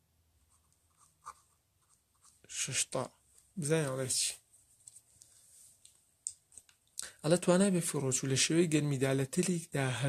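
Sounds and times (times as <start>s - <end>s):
pen scratching on paper: 0.5s - 2.4s
person speaking: 2.4s - 4.4s, 6.3s - 10.0s.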